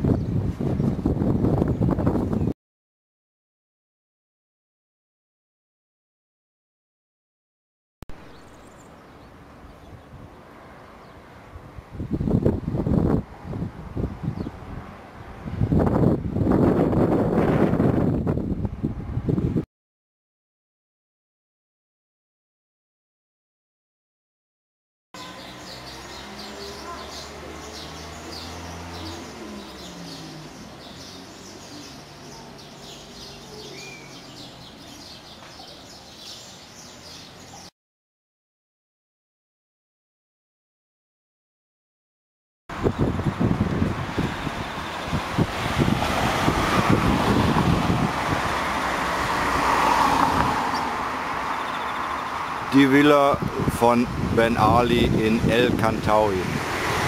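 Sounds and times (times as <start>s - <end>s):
wind buffeting microphone: 0.0s - 2.6s, 9.6s - 19.6s, 42.7s - 57.0s
small birds chirping: 8.2s - 11.4s, 25.2s - 37.7s, 42.8s - 45.4s, 50.7s - 53.4s.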